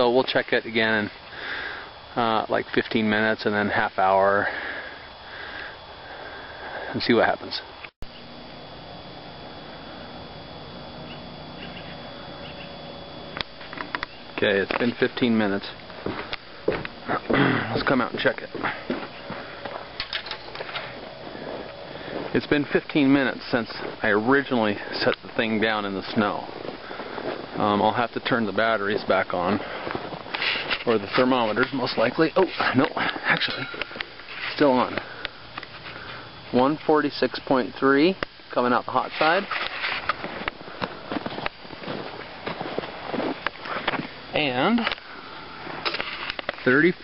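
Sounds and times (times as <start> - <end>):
footsteps in snow: 13.5 - 27.9, 28.8 - 32.7, 39.2 - 44.2.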